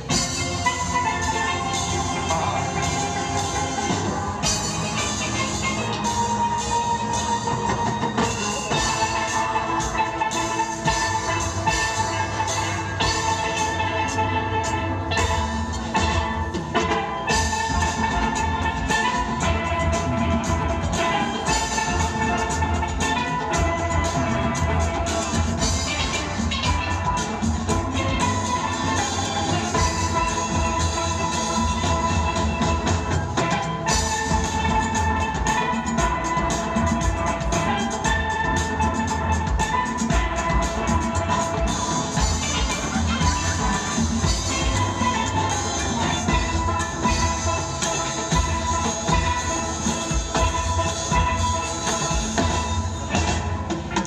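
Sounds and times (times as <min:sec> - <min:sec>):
drums keeping a beat: 0:00.0 - 0:54.0
steelpans playing melody: 0:00.0 - 0:54.0.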